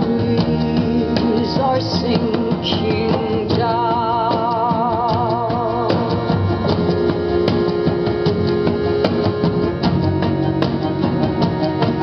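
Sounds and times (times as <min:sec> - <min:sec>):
drums: 0:00.0 - 0:12.0
plucked guitar: 0:00.0 - 0:12.0.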